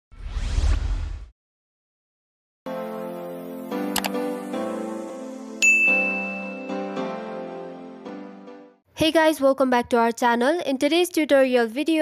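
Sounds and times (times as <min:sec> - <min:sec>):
bass whoosh with rising sweep: 0:00.1 - 0:01.3.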